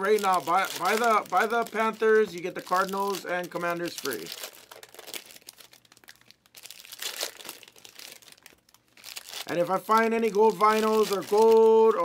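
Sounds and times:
foil wrappers crinkling: 0.0 - 12.0.

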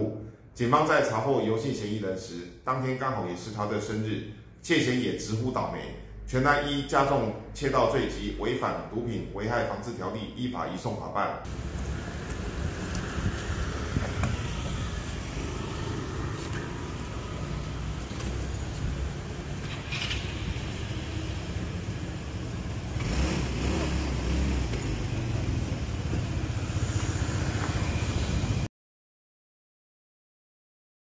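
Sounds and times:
low rumble: 11.5 - 18.0
car engine running: 11.5 - 27.2.

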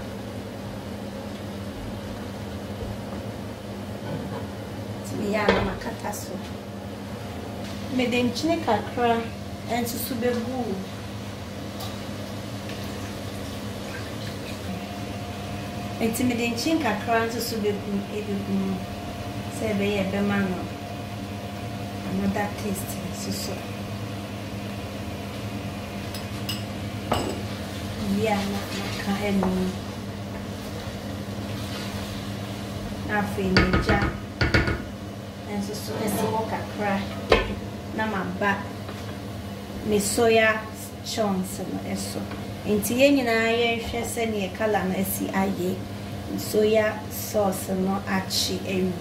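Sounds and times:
steady low hum: 0.0 - 49.0.

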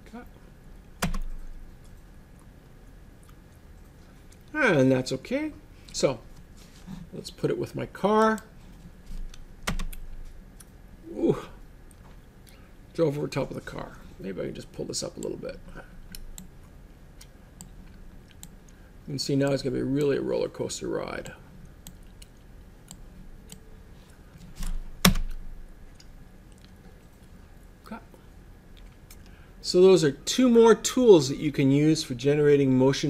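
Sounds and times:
computer keyboard and mouse clicks: 1.0 - 2.0, 9.2 - 10.2.

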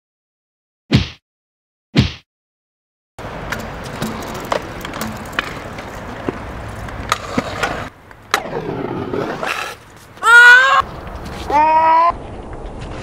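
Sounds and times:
scooter deck clacking on concrete: 3.2 - 8.5
scooter wheels rolling on concrete: 3.2 - 13.0.

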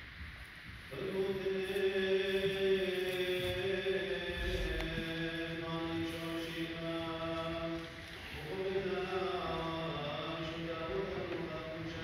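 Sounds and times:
liturgical chanting: 0.7 - 12.0.

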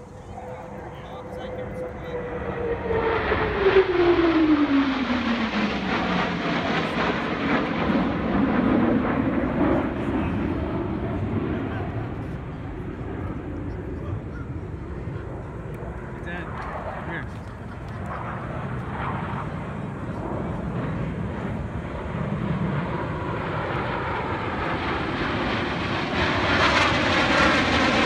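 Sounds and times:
jets roaring past: 0.0 - 28.0.

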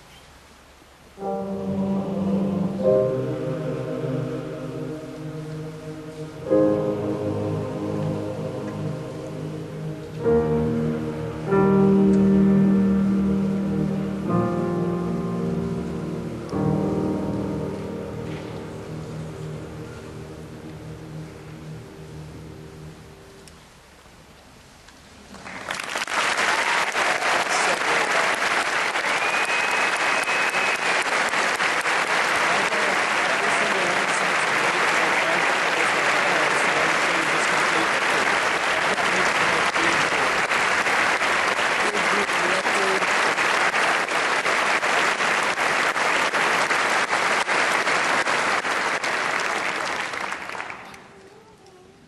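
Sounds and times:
audience applauding: 25.3 - 51.3.

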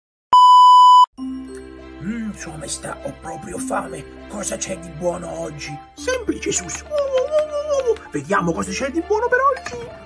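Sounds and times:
high test tone beep: 0.3 - 1.1.

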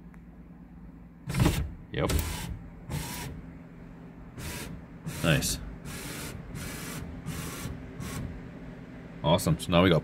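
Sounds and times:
power window motor running: 1.3 - 3.4, 4.4 - 8.6.

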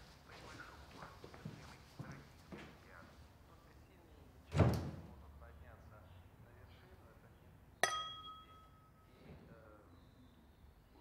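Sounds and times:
door shutting with dull thud: 4.5 - 5.0
sharp glass clink: 7.8 - 9.1.

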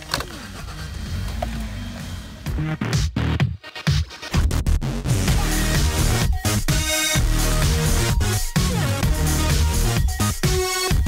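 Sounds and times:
car engine starting and idling: 0.0 - 3.3.

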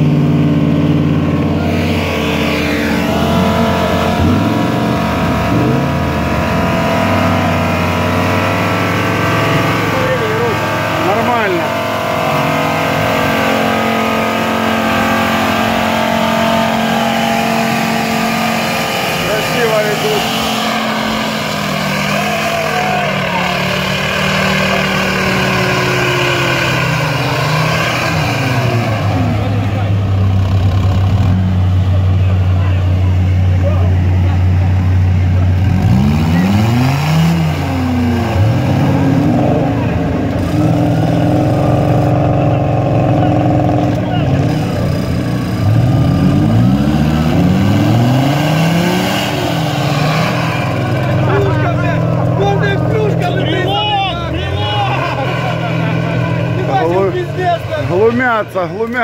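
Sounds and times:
off-road engines revving under load: 0.0 - 59.0.

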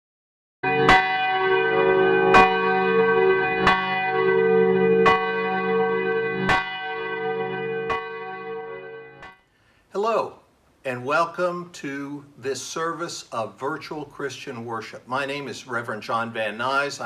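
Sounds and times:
church bell tolling: 0.6 - 9.4.

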